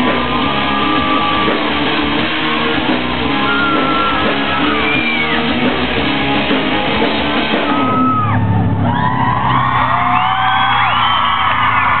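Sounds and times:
live rock band playing: 0:00.0 - 0:08.8
crowd cheering and whooping: 0:00.0 - 0:12.0.

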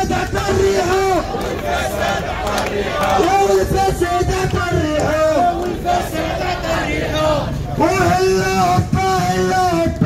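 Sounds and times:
crowd chanting: 0:00.0 - 0:08.7.

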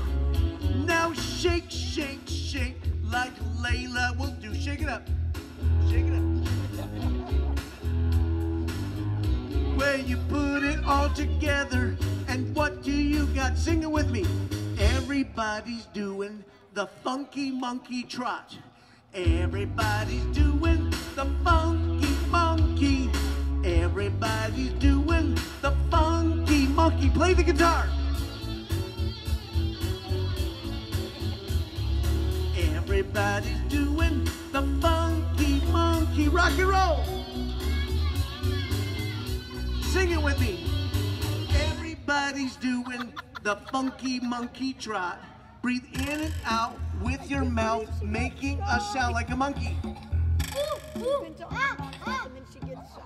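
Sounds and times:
live rock band playing: 0:00.0 - 0:15.2, 0:19.6 - 0:42.1
children's song backing music: 0:00.0 - 0:18.3, 0:19.2 - 0:53.0.

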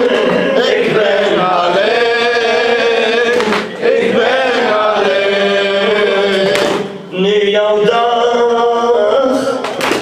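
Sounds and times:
man chanting into a microphone: 0:05.6 - 0:09.8.

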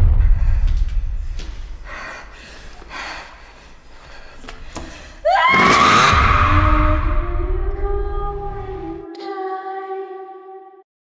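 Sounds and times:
trailer sound hit: 0:00.0 - 0:01.9, 0:05.9 - 0:09.0
deep low rumble: 0:00.0 - 0:02.6, 0:06.1 - 0:09.0
person screaming: 0:05.2 - 0:07.4.

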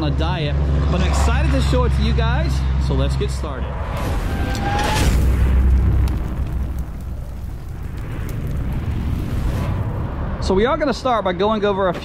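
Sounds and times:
fiery whoosh: 0:03.7 - 0:11.1
deep booming rumble: 0:03.7 - 0:11.2.

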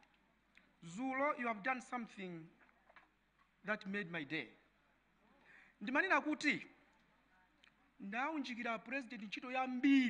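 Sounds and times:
man speaking: 0:00.8 - 0:02.6, 0:03.6 - 0:04.7, 0:05.8 - 0:06.8, 0:08.0 - 0:10.0.

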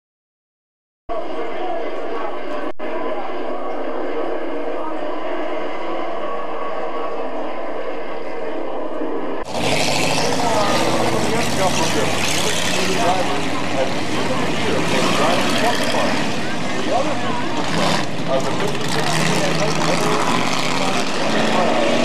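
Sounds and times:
people talking: 0:01.1 - 0:22.0
race car engines: 0:01.1 - 0:22.0.

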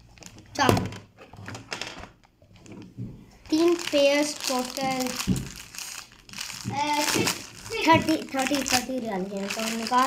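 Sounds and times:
child's voice: 0:00.6 - 0:00.9, 0:03.5 - 0:05.4, 0:06.6 - 0:10.0
plastic packaging crinkling: 0:03.5 - 0:10.0.

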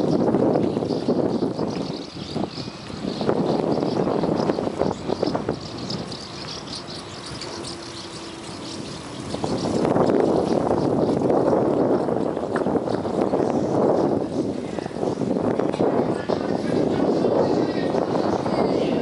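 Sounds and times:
bicycle rattles: 0:00.0 - 0:19.0
road and tyre noise: 0:00.0 - 0:19.0
wind buffeting microphone: 0:00.0 - 0:19.0.

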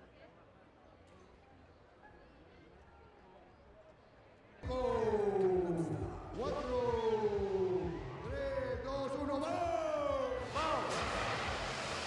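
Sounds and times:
faint background murmur: 0:00.0 - 0:10.9.

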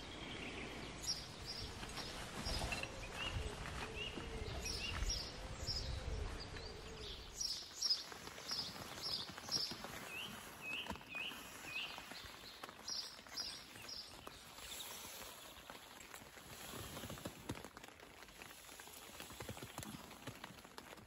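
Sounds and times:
wind rumble on microphone: 0:00.0 - 0:10.4
songbird chirping: 0:00.0 - 0:17.2.

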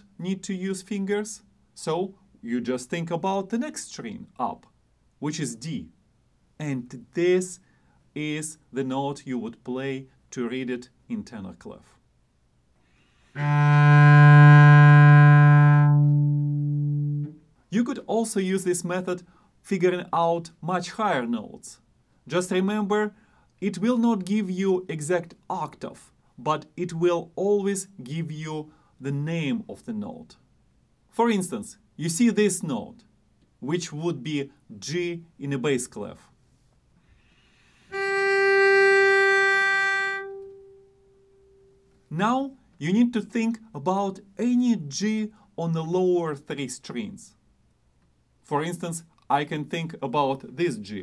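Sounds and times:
cello bowed long note: 0:13.2 - 0:17.4, 0:37.9 - 0:41.8.

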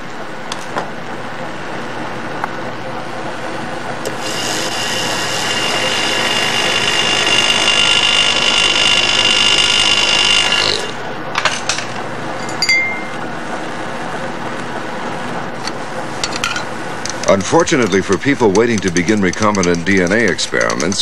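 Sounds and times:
vortex mixer whirring: 0:00.0 - 0:11.4, 0:12.0 - 0:21.0
glass clinks: 0:12.4 - 0:13.2.

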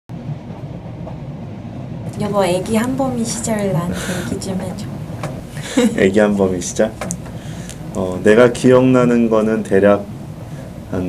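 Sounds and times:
train rumble inside carriage: 0:00.1 - 0:11.0.

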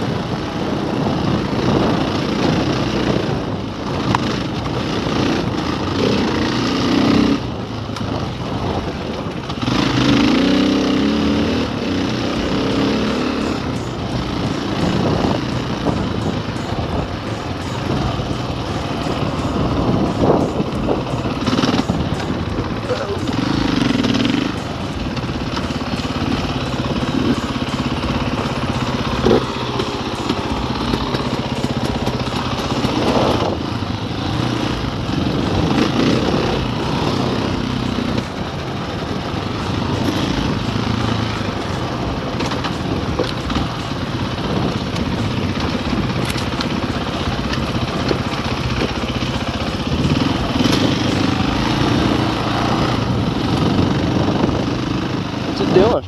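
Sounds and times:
dirt bike engine: 0:00.0 - 0:56.0
rattle from rough track: 0:00.0 - 0:56.0.

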